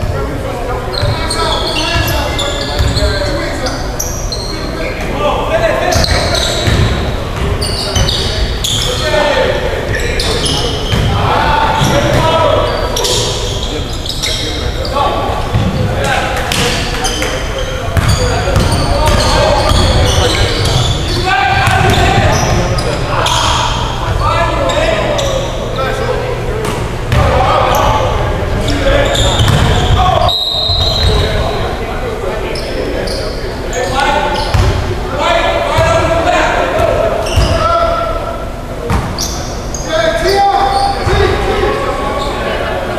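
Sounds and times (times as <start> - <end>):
players calling out: 0.0 - 42.9.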